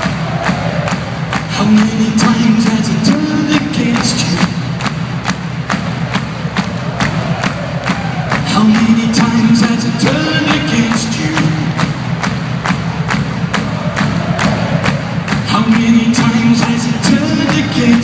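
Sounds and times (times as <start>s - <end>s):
steady drum beat: 0.0s - 18.0s.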